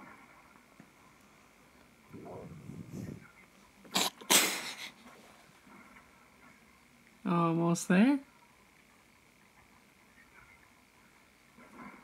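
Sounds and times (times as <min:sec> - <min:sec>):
person sneezing: 0:03.9 - 0:04.9.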